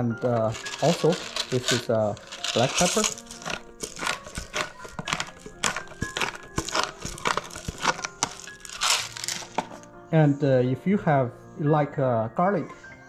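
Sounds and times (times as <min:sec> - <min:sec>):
soft background music: 0:00.0 - 0:13.0
pepper mill grinding: 0:00.2 - 0:09.9.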